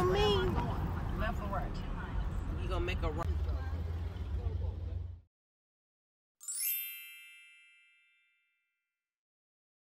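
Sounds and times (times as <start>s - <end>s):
descending bell-like chime: 6.4s - 8.8s.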